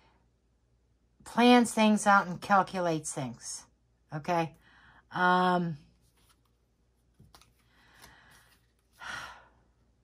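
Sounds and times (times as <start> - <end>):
faint breath: 4.6 - 5.1, 7.6 - 9.9.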